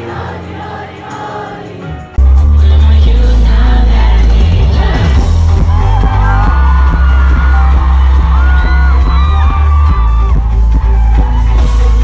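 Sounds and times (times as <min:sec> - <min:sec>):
singer's gliding vocal: 0:00.0 - 0:05.4
heavy bass: 0:02.0 - 0:12.0
audience whooping and yelling: 0:05.0 - 0:12.0.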